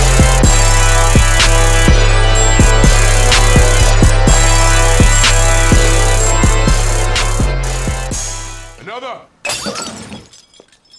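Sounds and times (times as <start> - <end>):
music with drum beat: 0.0 - 8.4
glass shattering effect: 9.4 - 10.9.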